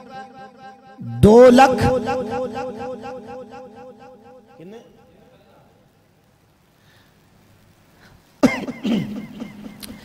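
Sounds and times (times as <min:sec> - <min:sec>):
man coughing: 0:08.4 - 0:09.6.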